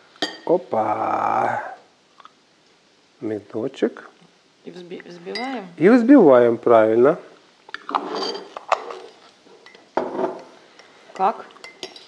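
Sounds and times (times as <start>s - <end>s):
teaspoon clinking against ceramic mug: 11.2s - 12.0s.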